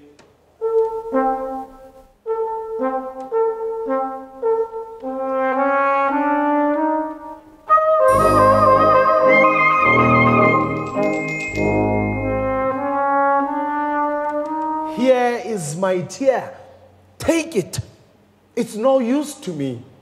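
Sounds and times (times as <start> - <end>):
brass ensemble playing: 0.6 - 15.0.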